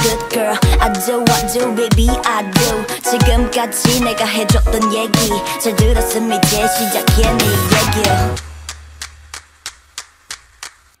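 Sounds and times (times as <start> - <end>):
low bass note: 7.2 - 9.0
sharp clap-like percussion hits: 7.2 - 11.0.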